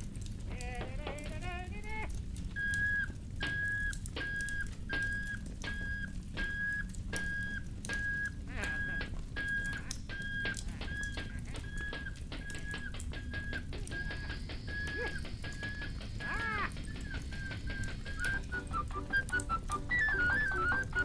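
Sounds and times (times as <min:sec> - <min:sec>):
old film soundtrack hum and hiss: 0:00.0 - 0:21.0
cartoon kettle whistle tooting: 0:01.0 - 0:21.0.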